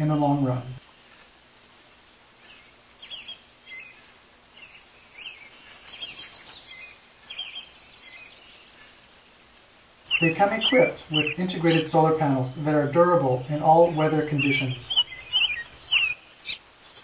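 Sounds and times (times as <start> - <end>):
birds chirping: 0.0 - 0.8, 2.4 - 9.5, 10.1 - 17.0
faint outdoor hiss: 0.0 - 17.0.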